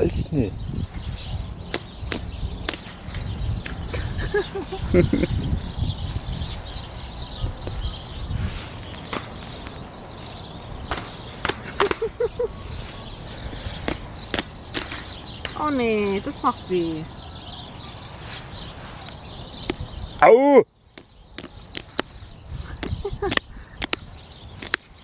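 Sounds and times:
beaks pecking clicks and taps: 0:01.2 - 0:04.8, 0:10.8 - 0:12.1, 0:13.8 - 0:16.4, 0:19.0 - 0:19.9, 0:20.9 - 0:25.0.

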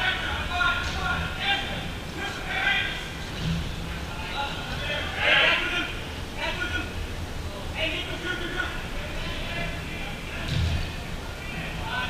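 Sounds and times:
players shouting: 0:00.0 - 0:07.0
sports hall background noise: 0:00.0 - 0:12.0.

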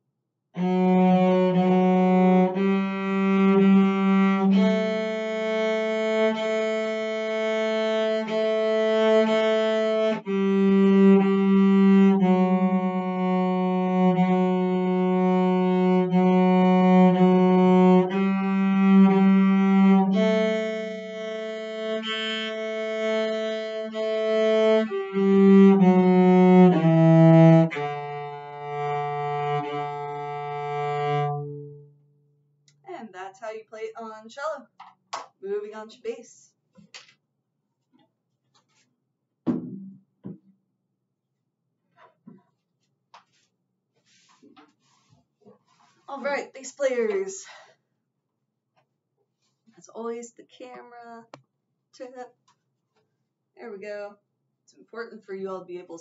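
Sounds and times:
bowed cello: 0:00.6 - 0:32.0.

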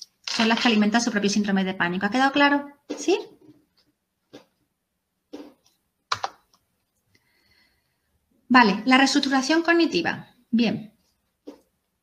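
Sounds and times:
faint breaths: 0:07.1 - 0:08.2.

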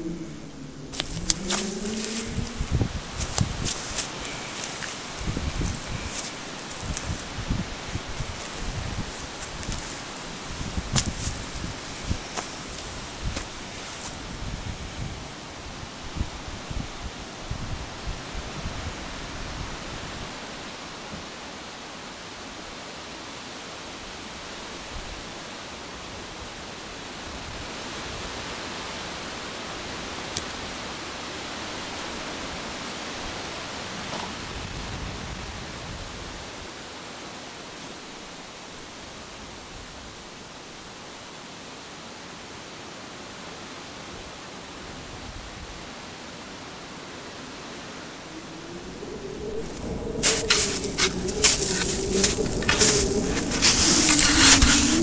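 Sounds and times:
faint low rumbling: 0:00.0 - 0:15.2, 0:48.1 - 0:55.0
outdoor background hiss: 0:00.0 - 0:55.0.

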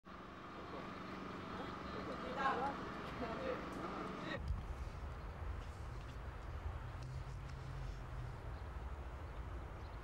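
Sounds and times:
distant murmuring voices: 0:00.3 - 0:05.4.

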